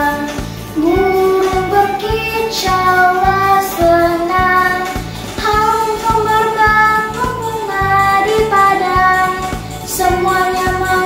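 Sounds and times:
backing track with steady beat: 0.0s - 11.0s
girl singing a hymn: 0.0s - 11.0s.

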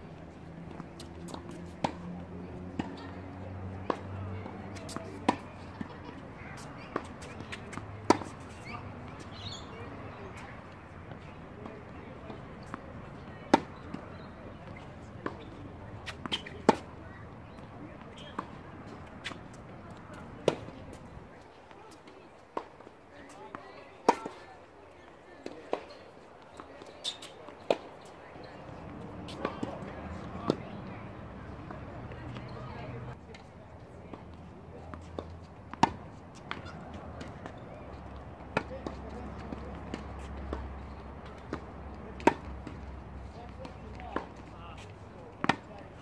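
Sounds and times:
tennis ball hit by racquet: 3.8s - 5.9s, 6.5s - 10.5s, 11.2s - 21.1s, 34.9s - 37.6s, 38.5s - 45.8s
tennis ball bounce: 3.8s - 21.1s, 25.4s - 30.8s, 34.9s - 45.8s.

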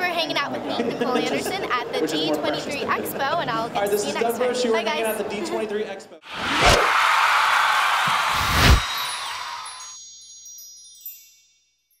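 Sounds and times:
rushing whoosh: 6.3s - 7.3s, 8.0s - 9.7s
sparkling chime tones: 8.7s - 12.0s.

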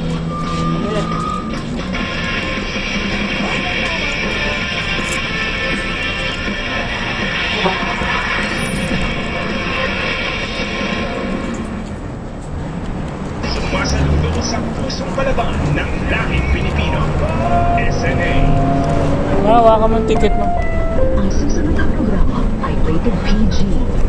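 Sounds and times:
music: 0.0s - 11.8s, 16.8s - 24.0s
people's voices: 0.0s - 12.0s, 12.8s - 24.0s
bus engine rumble: 0.0s - 24.0s.

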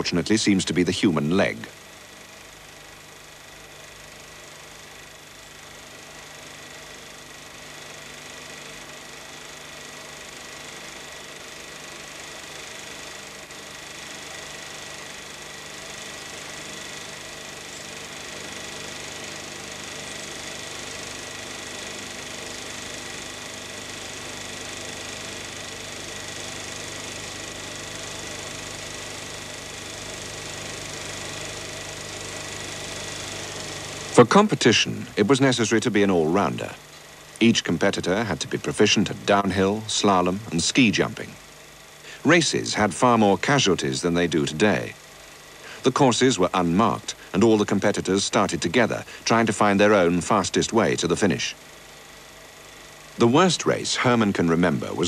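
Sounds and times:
steady hiss: 30.9s - 55.0s.

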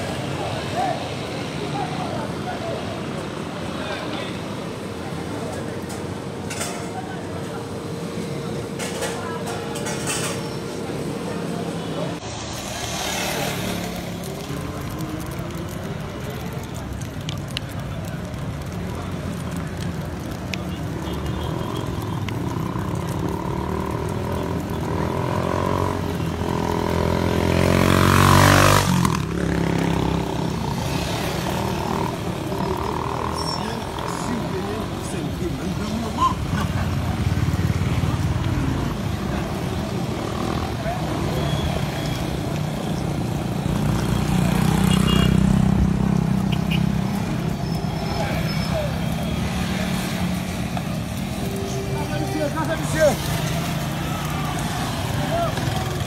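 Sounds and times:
people's voices: 0.0s - 56.0s
motor vehicle passing: 6.8s - 17.4s, 21.6s - 56.0s.

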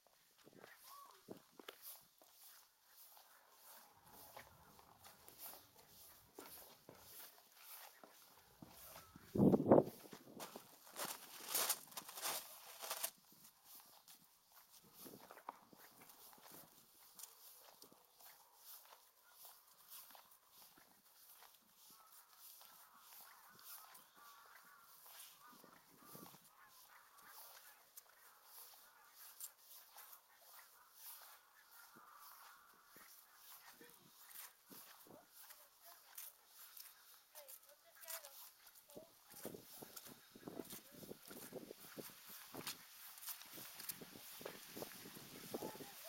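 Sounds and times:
footsteps on grass: 0.0s - 46.0s.

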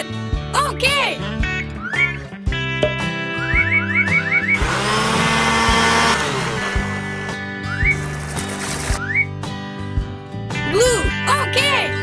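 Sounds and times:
background music: 0.0s - 12.0s
blender whirring: 4.6s - 9.0s.

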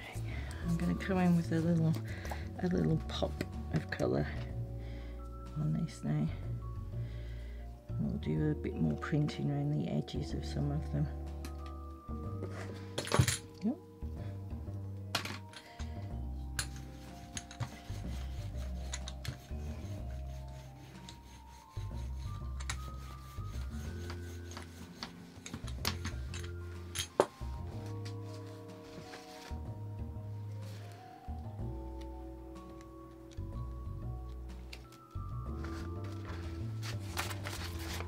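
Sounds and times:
soft background music: 0.0s - 38.0s
painting tools clicking and rubbing: 16.6s - 28.5s, 34.6s - 38.0s.

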